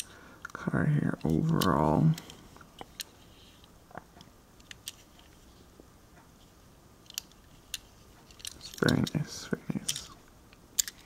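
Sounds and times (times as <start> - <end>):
toy car handling: 4.6 - 5.4, 7.0 - 10.2, 10.8 - 11.0
small sharp clicks: 9.8 - 11.0.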